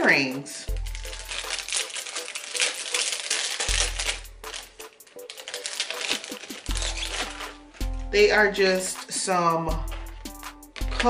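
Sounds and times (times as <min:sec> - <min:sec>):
background music with deep bass: 0:00.0 - 0:11.0
packet rustling and clicking: 0:00.7 - 0:08.2, 0:09.8 - 0:11.0.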